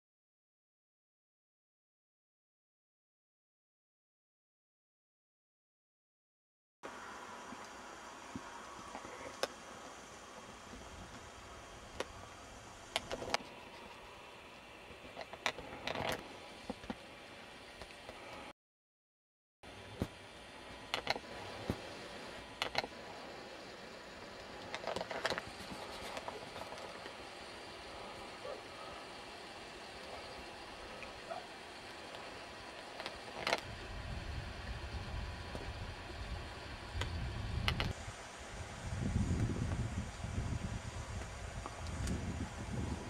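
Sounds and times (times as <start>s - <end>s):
steady hiss: 6.9s - 18.5s, 19.7s - 43.0s
low uneven rumble: 19.7s - 43.0s.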